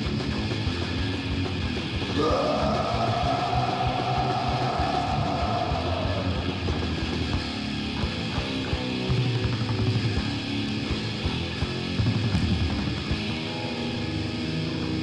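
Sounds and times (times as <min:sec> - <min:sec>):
distorted guitars: 0:00.0 - 0:15.0
fast dense drumming: 0:01.5 - 0:10.4.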